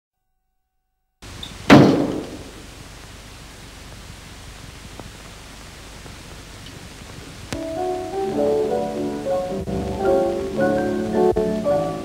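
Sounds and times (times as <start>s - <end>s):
film soundtrack hiss: 1.2s - 12.0s
door slam: 1.4s - 2.6s.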